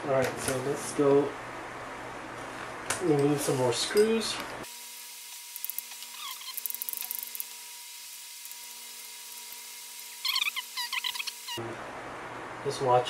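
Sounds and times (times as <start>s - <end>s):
screwdriver turning screws: 5.6s - 7.5s
short squeaks: 6.0s - 6.9s, 10.1s - 11.6s.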